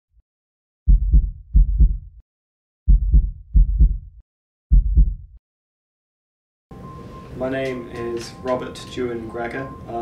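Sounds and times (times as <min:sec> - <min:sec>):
heartbeat thumps: 0:00.9 - 0:02.2, 0:02.9 - 0:05.4.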